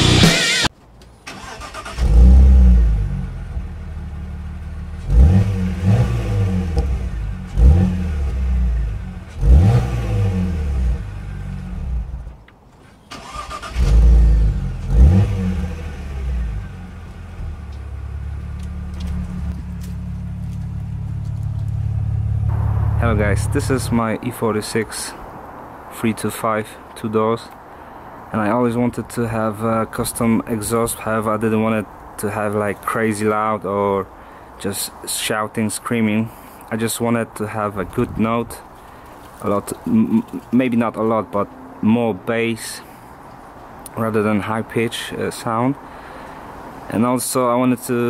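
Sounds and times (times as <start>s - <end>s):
car engine starting and revving: 0.0s - 12.4s, 13.1s - 24.5s
car exhaust idling: 2.0s - 12.3s, 13.8s - 24.8s.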